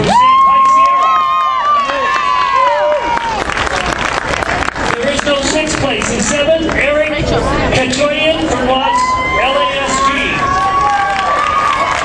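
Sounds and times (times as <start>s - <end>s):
audience cheering: 0.0s - 4.1s, 8.7s - 12.0s
applause and clapping: 0.0s - 7.1s, 10.5s - 12.0s
high-pitched shouts: 8.7s - 12.0s.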